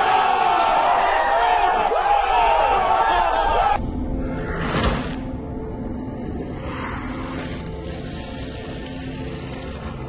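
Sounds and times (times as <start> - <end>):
low rumbling drone: 3.8 - 10.0.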